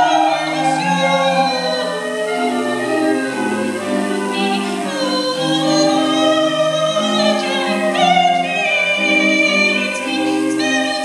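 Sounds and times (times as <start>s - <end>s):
choir singing through speakers: 0.0s - 11.0s.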